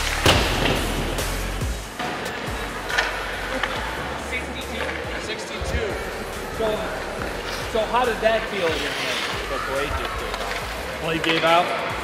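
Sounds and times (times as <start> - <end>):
faint music: 0.0 - 12.0
people talking: 3.6 - 11.7.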